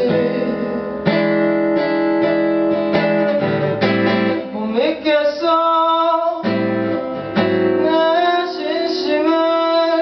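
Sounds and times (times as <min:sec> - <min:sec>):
man singing a high note: 0:00.0 - 0:01.1, 0:04.4 - 0:06.6, 0:07.7 - 0:10.0
acoustic guitar chord ringing: 0:00.0 - 0:10.0.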